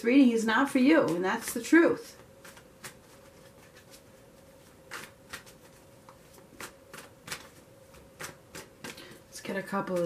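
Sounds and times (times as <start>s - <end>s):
cards being shuffled: 1.0s - 10.0s.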